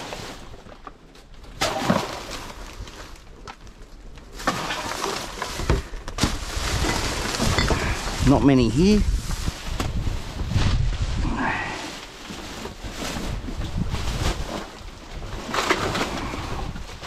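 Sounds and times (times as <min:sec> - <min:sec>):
plastic garbage bags rustling: 0:00.0 - 0:17.0
wind rumbling on microphone: 0:05.6 - 0:17.0.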